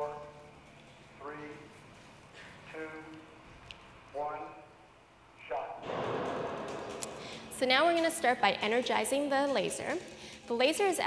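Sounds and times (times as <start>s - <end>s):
man counting over loudspeaker: 0.0s - 0.5s.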